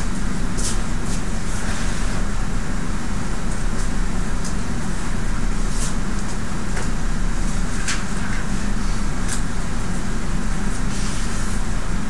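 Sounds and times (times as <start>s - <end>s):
low room hum and rumble: 0.0s - 12.0s.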